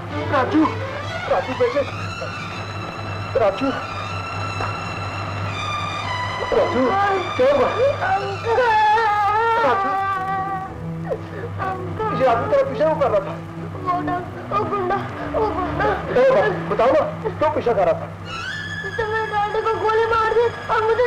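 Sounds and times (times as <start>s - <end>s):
people crying: 0.0s - 21.0s
siren wailing: 0.4s - 10.4s, 18.2s - 21.0s.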